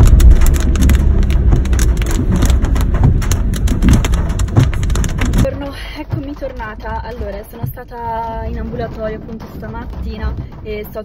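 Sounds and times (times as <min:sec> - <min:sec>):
car rumbling on a wet road: 0:00.0 - 0:11.0
heavy rain on a car roof: 0:00.0 - 0:11.0.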